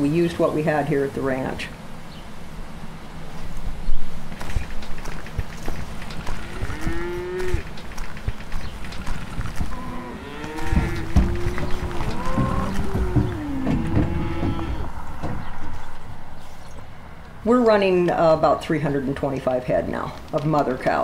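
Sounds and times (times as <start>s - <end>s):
low thumps: 5.3s - 16.2s
cattle mooing: 6.4s - 7.6s, 9.7s - 15.1s.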